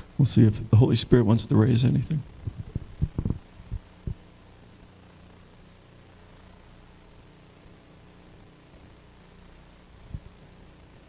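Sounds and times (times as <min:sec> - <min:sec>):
low electrical hum: 0:00.0 - 0:11.0
microphone handling knocks: 0:02.4 - 0:04.2.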